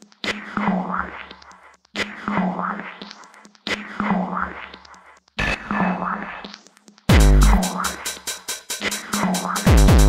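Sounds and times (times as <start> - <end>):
noisy sampled phrase: 7.1 - 8.0.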